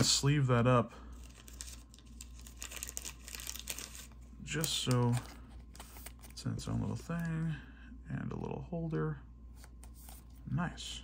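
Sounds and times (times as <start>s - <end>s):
plastic sleeve crinkling: 1.1s - 7.3s.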